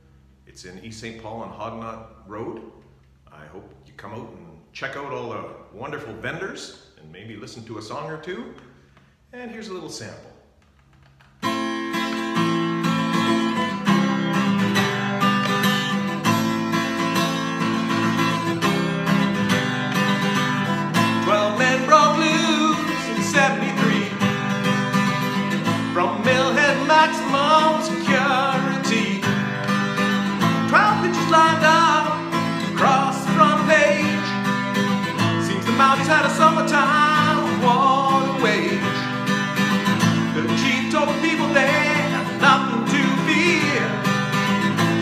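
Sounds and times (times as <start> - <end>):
acoustic guitar strumming: 11.2 - 45.0
man singing: 21.0 - 24.6, 25.6 - 29.7, 30.3 - 39.4, 40.0 - 44.5.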